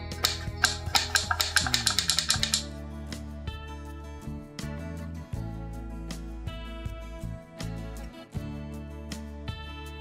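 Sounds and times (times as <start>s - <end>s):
background music: 0.0s - 10.0s
wooden mechanism clicking: 0.1s - 2.7s.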